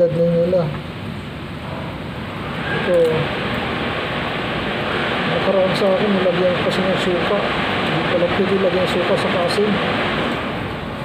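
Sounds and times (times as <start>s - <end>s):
steady rushing noise: 0.8s - 11.0s.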